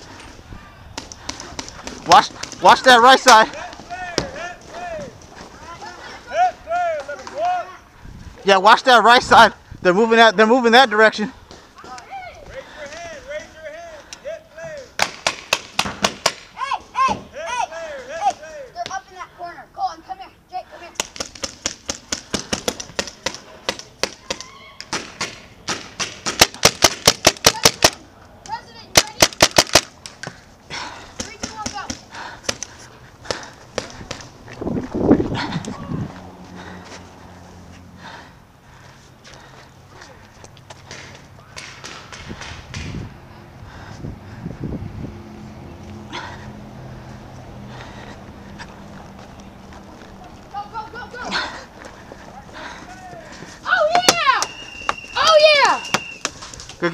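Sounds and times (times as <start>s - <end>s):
distant shouting voices: 0.0s - 15.0s, 16.5s - 21.1s, 22.2s - 25.0s, 30.2s - 34.6s, 35.2s - 42.5s, 43.1s - 56.9s
paintball markers firing: 21.0s - 28.0s, 29.0s - 30.3s.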